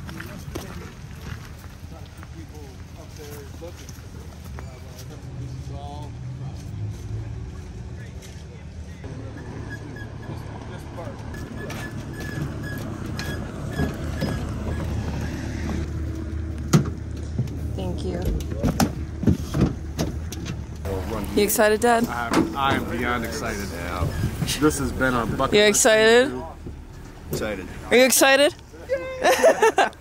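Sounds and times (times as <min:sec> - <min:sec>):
vehicle engine rumble: 0:00.0 - 0:30.0.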